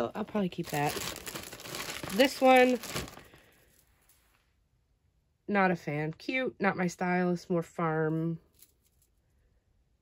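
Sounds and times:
plastic bag crinkling: 0.0s - 4.0s.

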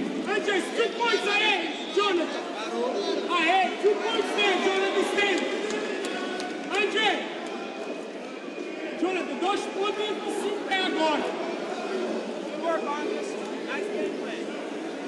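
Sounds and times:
crowd noise: 0.0s - 15.0s
men shouting: 0.3s - 7.2s.

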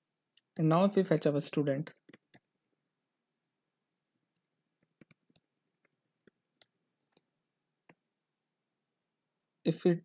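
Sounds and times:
computer keyboard keystrokes: 1.9s - 2.5s, 4.4s - 6.8s.

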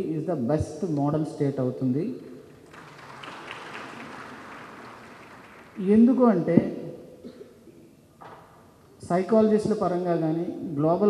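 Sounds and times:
audience applauding: 2.4s - 6.2s.

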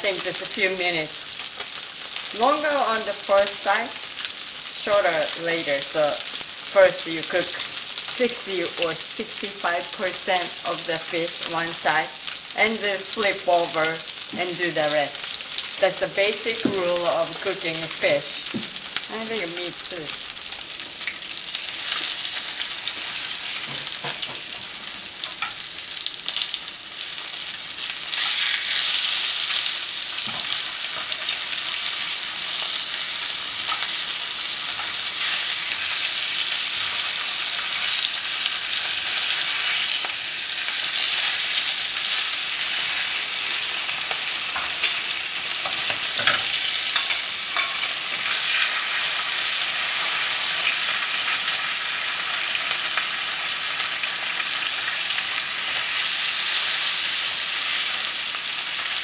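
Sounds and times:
fish sizzling in a pan: 0.0s - 59.0s.

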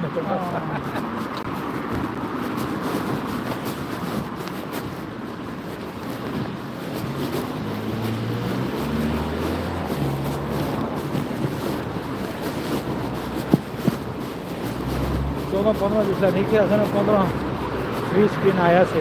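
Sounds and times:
vehicle engine rumble: 0.0s - 19.0s
wind buffeting microphone: 0.0s - 19.0s.

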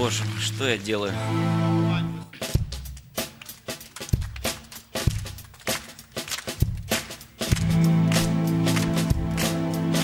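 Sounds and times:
drum kit playing a steady beat: 2.3s - 10.0s.

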